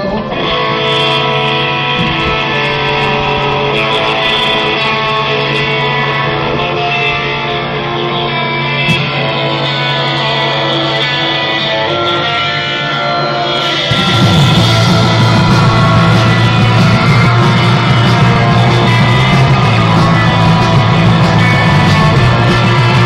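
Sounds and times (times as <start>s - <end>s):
electric guitar ringing notes: 0.0s - 23.0s
held low note: 11.6s - 23.0s.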